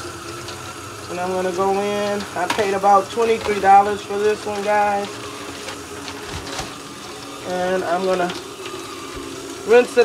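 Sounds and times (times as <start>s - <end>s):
tap water running into sink: 0.0s - 10.0s
plastic wrapper crinkling: 2.0s - 9.7s.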